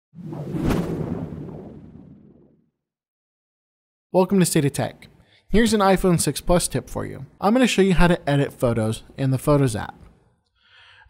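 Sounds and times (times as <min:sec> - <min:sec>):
whoosh: 0:00.2 - 0:02.6.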